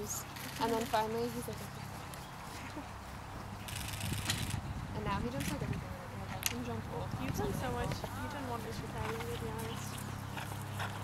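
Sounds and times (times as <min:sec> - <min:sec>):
faint hoofbeats on grass: 0:07.2 - 0:11.0.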